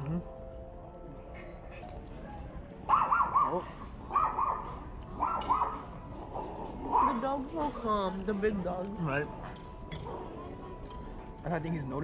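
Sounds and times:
small dogs yapping: 0:02.9 - 0:07.3.

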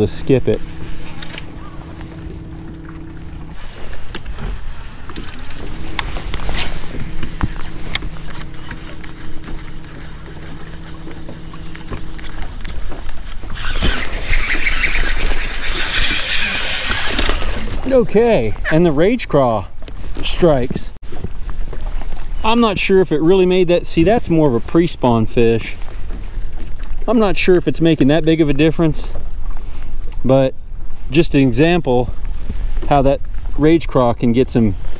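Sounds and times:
fish thrashing and splashing: 0:00.0 - 0:17.9
electric trolling motor humming: 0:00.0 - 0:18.0.

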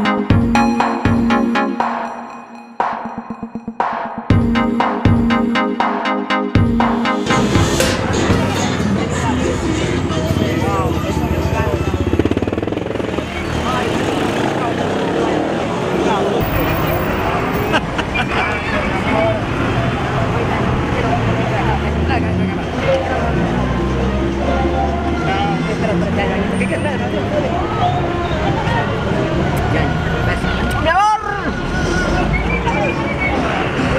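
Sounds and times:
street traffic: 0:06.6 - 0:33.9
cars idling: 0:06.8 - 0:13.9
vehicle engine pulsing: 0:07.3 - 0:18.0
people talking: 0:07.9 - 0:33.9.

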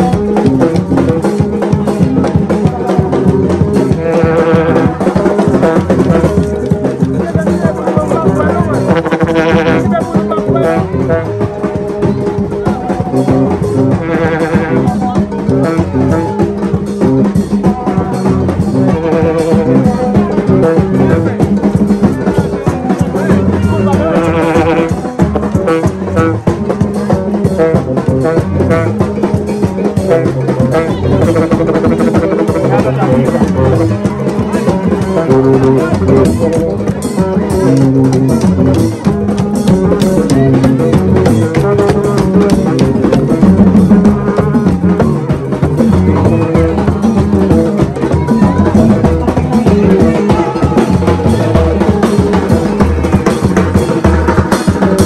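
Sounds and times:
tube horns playing a riff: 0:00.0 - 0:21.4, 0:22.6 - 0:55.0
crowd voices: 0:00.0 - 0:55.0
drums: 0:00.0 - 0:55.0.

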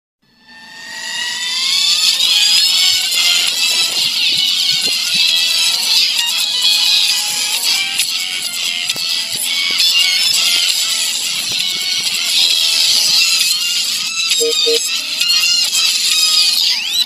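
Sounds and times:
cartoon theme music: 0:14.4 - 0:14.9.

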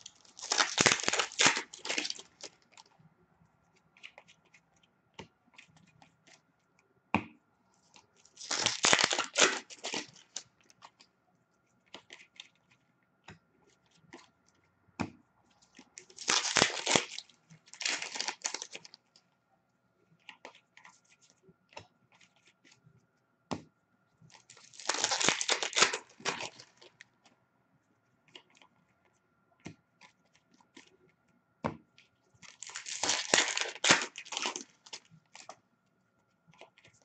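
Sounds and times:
card pack wrappers tearing: 0:00.0 - 0:02.6, 0:08.4 - 0:10.4, 0:16.0 - 0:18.9, 0:24.5 - 0:26.9, 0:32.5 - 0:35.5.

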